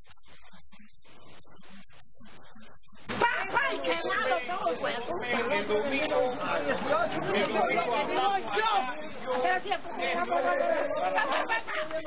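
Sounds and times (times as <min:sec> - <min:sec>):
people talking at once: 0:00.1 - 0:12.0.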